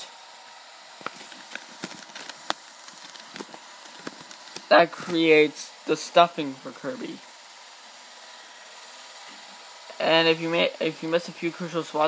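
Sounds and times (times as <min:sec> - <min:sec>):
handling clicks and rustles: 0:01.0 - 0:05.2.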